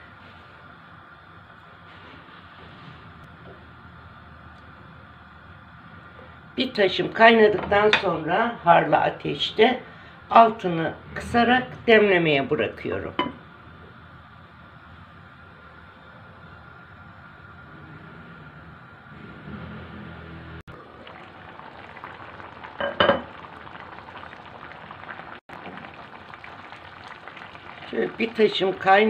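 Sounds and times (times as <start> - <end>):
water boiling in a pot: 0.0 - 29.0.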